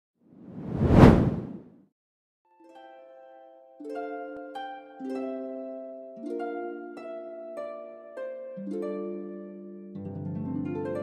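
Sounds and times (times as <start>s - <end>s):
whoosh sound effect: 0.5s - 1.6s.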